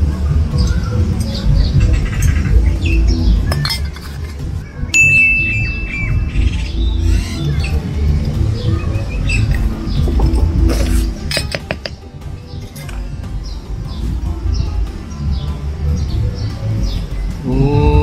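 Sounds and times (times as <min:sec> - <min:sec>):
small birds chirping: 0:00.0 - 0:18.0
high whistle-like tone: 0:04.9 - 0:07.1.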